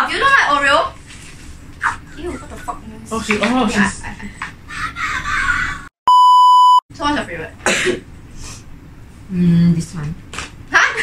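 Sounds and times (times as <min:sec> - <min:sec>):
censor bleep: 0:06.1 - 0:06.8.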